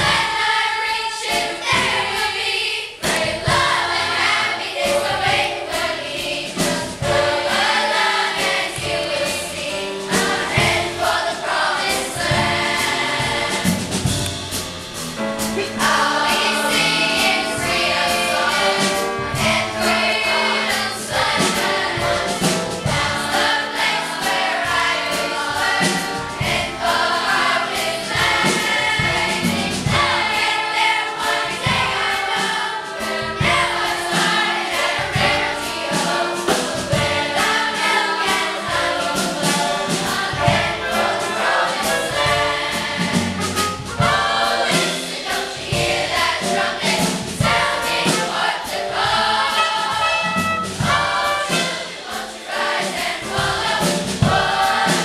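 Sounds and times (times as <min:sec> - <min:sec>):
children's choir singing: 0:00.0 - 0:55.0
rhythmic accompaniment: 0:00.0 - 0:55.0.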